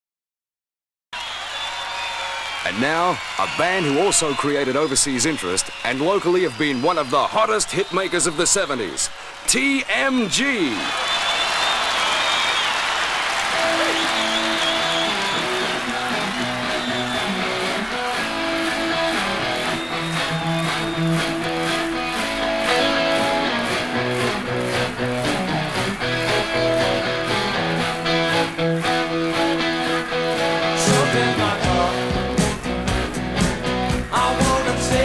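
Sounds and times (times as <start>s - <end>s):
crowd cheering and applauding: 1.2s - 35.0s
electric guitars playing rock: 13.5s - 35.0s
drums playing steady beat: 30.8s - 35.0s.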